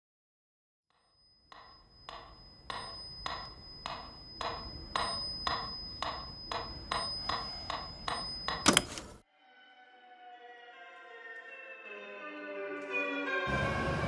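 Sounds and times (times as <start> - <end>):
metronome ticking: 1.5 - 8.8.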